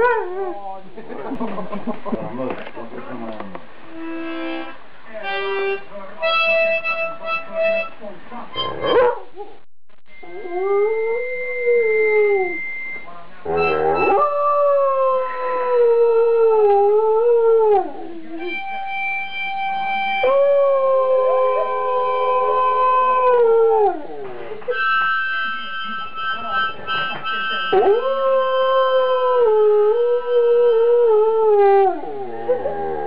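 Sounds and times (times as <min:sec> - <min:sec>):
harmonica chords: 0:03.8 - 0:09.0, 0:13.4 - 0:14.2, 0:18.4 - 0:20.4, 0:24.7 - 0:27.8
dog howling: 0:13.5 - 0:18.6, 0:20.2 - 0:24.8, 0:27.7 - 0:33.0.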